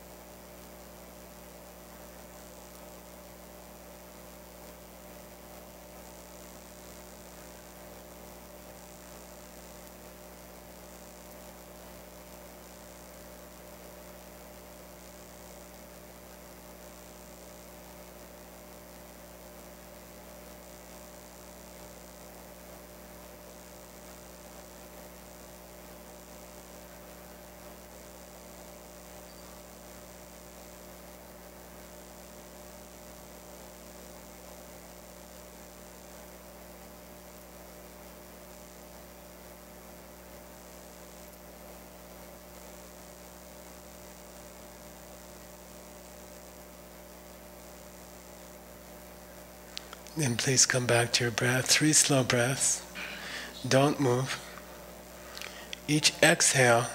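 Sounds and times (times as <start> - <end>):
electrical mains hum: 0.0 - 56.9
faint hiss: 0.0 - 56.9.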